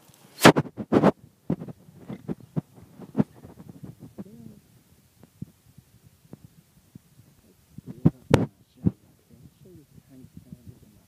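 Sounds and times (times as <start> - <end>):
loud thumps: 0.4 - 4.5.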